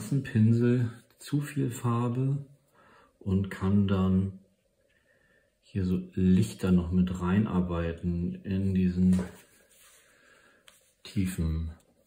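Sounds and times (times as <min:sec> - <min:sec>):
man speaking: 0:00.0 - 0:02.6, 0:03.2 - 0:04.5, 0:05.6 - 0:09.5, 0:11.0 - 0:11.9.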